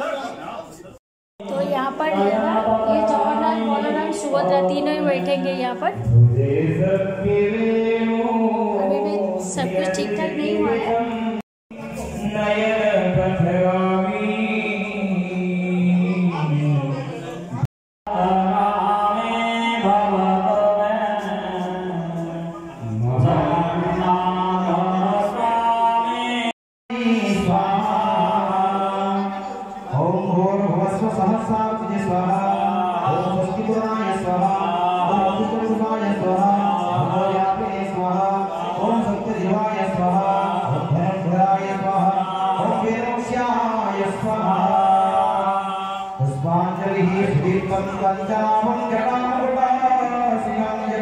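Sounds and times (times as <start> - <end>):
man chanting into a microphone: 1.4 - 51.0.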